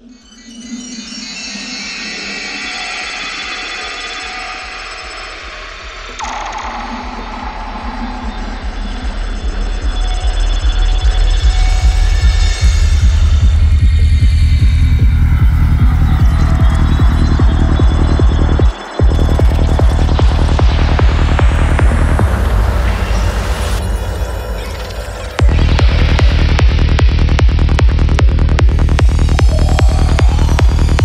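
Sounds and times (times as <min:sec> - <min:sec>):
electronic dance music: 0:05.2 - 0:31.0
fast pulsing bass: 0:06.2 - 0:31.0.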